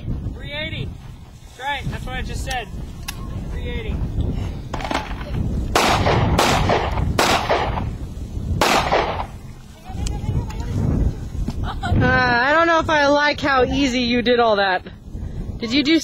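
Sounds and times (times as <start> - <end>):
handgun shots: 5.8 - 7.8, 8.6 - 9.3.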